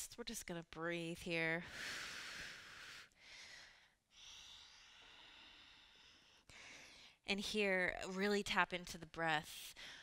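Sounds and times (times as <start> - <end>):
faint slow breathing: 1.6 - 7.2.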